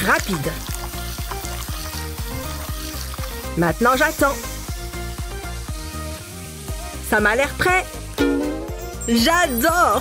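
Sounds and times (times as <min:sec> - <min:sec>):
background music with drum beat: 0:00.0 - 0:10.0
egg sizzling in a pan: 0:00.0 - 0:10.0.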